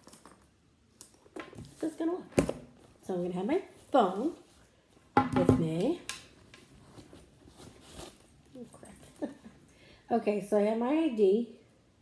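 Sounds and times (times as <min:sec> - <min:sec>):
rustling in a handbag: 0:02.8 - 0:05.1, 0:06.3 - 0:09.7.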